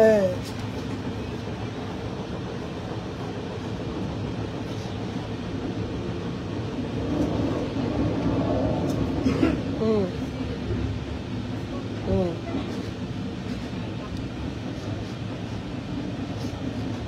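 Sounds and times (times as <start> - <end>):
train rumble inside carriage: 0.0 - 17.0.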